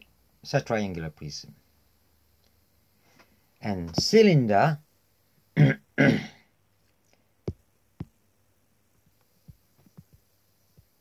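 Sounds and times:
man clearing throat: 5.6 - 6.5.

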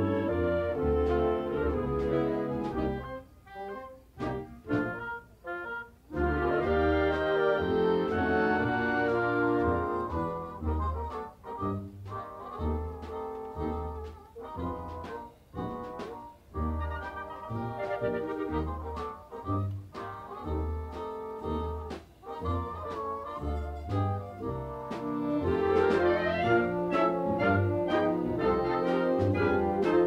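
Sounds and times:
low bass notes: 0.0 - 3.2, 4.1 - 5.2
concert band playing: 0.0 - 30.0.

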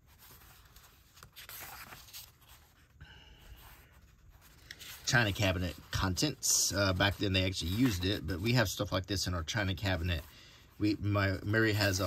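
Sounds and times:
paper page rustling: 0.0 - 2.9, 3.6 - 8.7.

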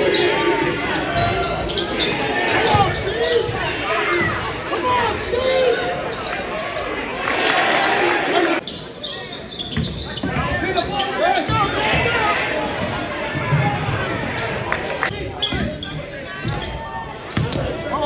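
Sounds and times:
voices of players and crowd: 0.0 - 18.0
shoe squeaks: 8.6 - 12.2, 15.2 - 18.0.

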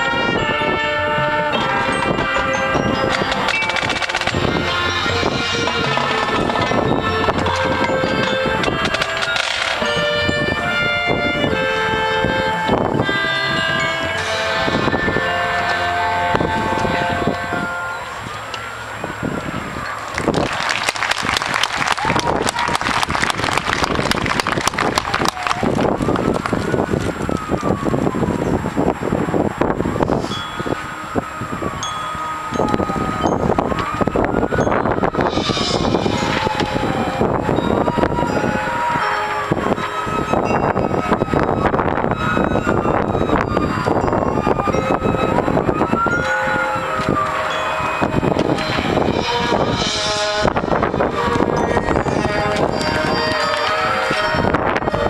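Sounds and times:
marching band playing: 0.0 - 19.0, 20.0 - 27.8, 30.8 - 55.0
siren-like rising and falling tone: 0.0 - 20.1, 21.8 - 55.0.

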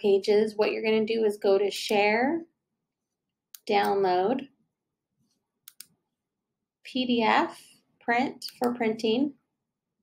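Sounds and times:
computer mouse clicks: 3.6 - 4.0, 5.6 - 6.0, 8.4 - 8.8.

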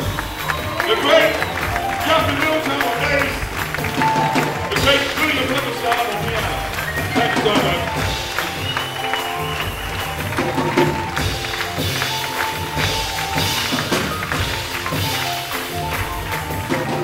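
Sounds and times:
percussion strikes and jingling: 0.0 - 17.0
piano: 0.0 - 17.0
upright bass: 0.0 - 17.0.

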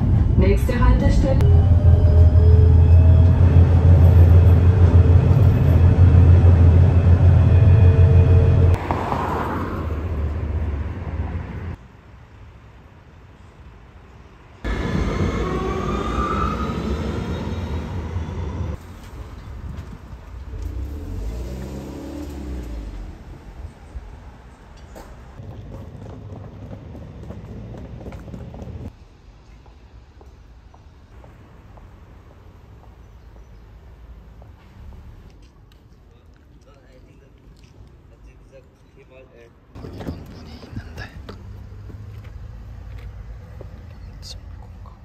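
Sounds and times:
tram rumbling: 0.0 - 11.8, 14.4 - 35.4, 39.7 - 45.0
street noise: 0.0 - 45.0
traffic: 0.0 - 45.0.

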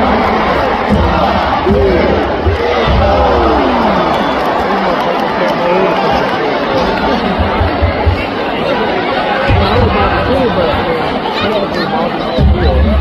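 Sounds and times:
low thumps: 0.0 - 4.0, 9.5 - 10.8
crowd chatter: 0.0 - 13.0.

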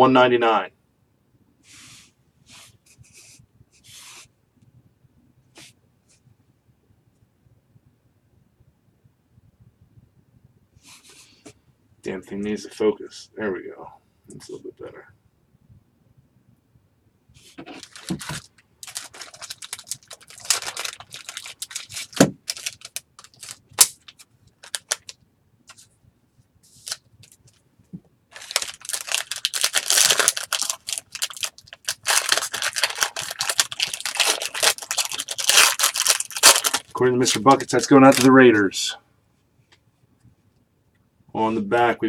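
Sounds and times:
foil wrapper crinkling: 17.6 - 25.2, 26.8 - 27.6, 28.3 - 38.4.

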